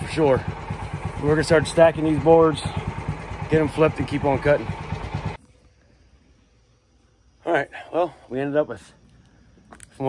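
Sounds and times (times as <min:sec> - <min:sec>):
man speaking: 0:01.2 - 0:02.8, 0:07.4 - 0:09.0
thin steady hum: 0:05.3 - 0:10.0.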